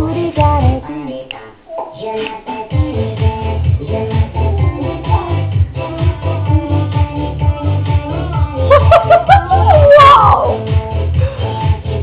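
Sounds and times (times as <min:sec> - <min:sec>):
high child-like singing voice: 0:00.0 - 0:02.9, 0:09.5 - 0:10.6
dance-pop song: 0:00.0 - 0:12.0
thumping bass beat: 0:02.7 - 0:12.0.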